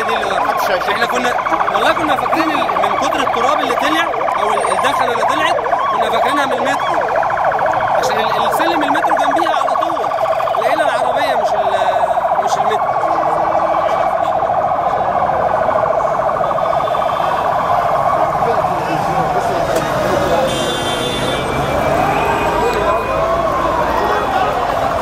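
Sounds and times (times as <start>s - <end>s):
emergency siren warbling: 0.0s - 25.0s
people talking in the street: 0.0s - 25.0s.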